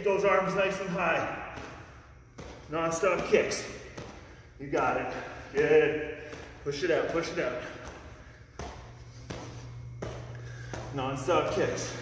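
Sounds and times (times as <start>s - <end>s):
bare feet thudding on gym mats: 0.0s - 12.0s
steady low hum: 0.0s - 12.0s.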